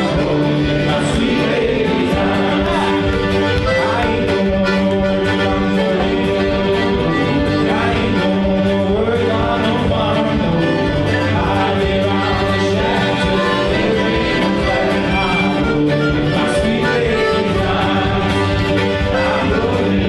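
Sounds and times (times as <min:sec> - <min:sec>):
fiddle playing: 0:00.0 - 0:20.0
person singing: 0:00.0 - 0:20.0
strummed acoustic guitar: 0:00.0 - 0:20.0.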